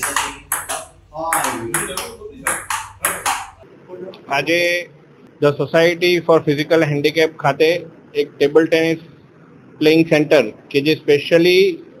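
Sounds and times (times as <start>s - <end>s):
ping pong ball clicking off paddles: 0.0s - 3.6s.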